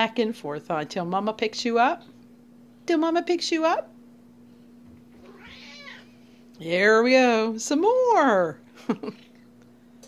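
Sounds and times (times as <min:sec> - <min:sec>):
cat meowing: 0:05.2 - 0:06.1.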